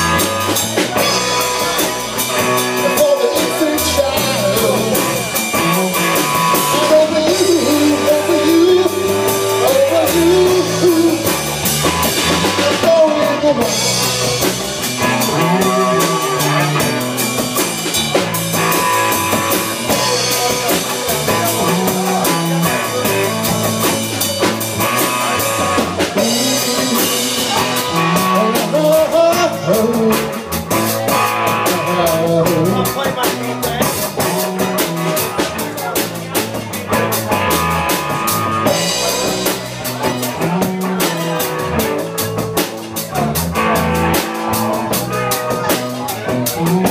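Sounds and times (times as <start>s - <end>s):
live rock band playing: 0.0s - 46.9s.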